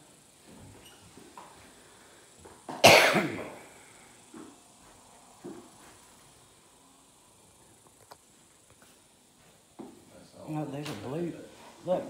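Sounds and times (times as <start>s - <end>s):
person coughing: 2.7s - 3.6s.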